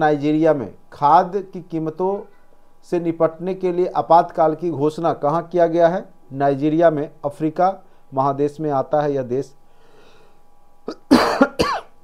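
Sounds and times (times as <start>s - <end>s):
man coughing: 10.9s - 12.0s.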